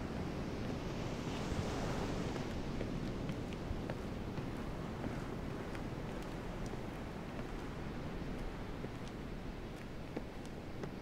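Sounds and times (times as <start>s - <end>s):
seaside wind: 0.0s - 11.0s.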